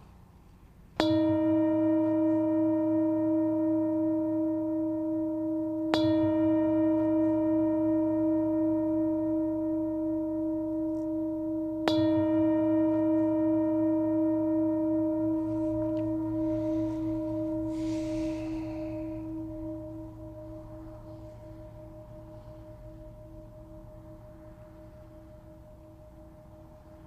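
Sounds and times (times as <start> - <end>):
singing bowl ringing: 1.0 - 27.0.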